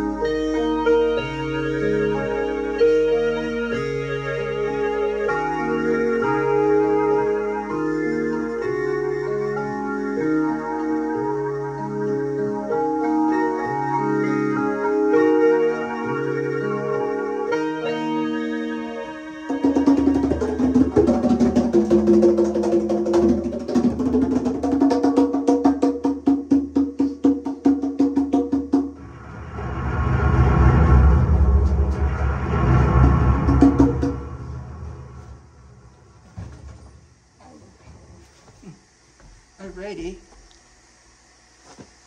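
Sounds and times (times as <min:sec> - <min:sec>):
keyboard chord: 0:00.0 - 0:23.6
drum kit fast strokes: 0:19.5 - 0:36.9
low drum roll: 0:28.0 - 0:38.2.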